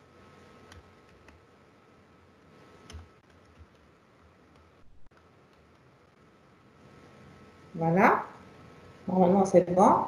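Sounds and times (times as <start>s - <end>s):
computer keyboard keystrokes: 2.8s - 3.9s.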